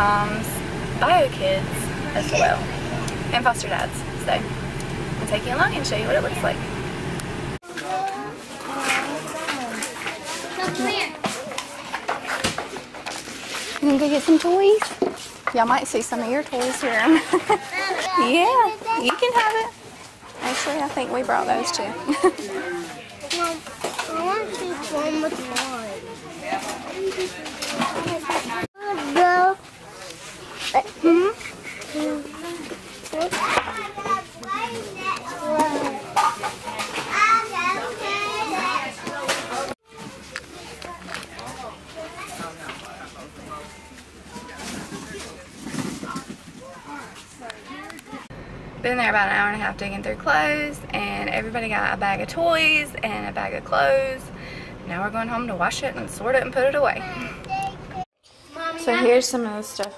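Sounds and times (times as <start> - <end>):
chatter of children and adults: 7.6 - 48.4, 56.3 - 59.9.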